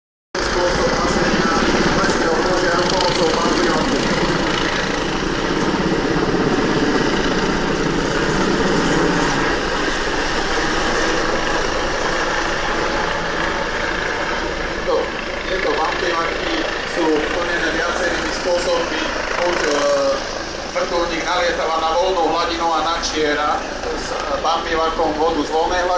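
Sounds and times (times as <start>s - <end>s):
helicopter rotor beating: 0.4s - 25.9s.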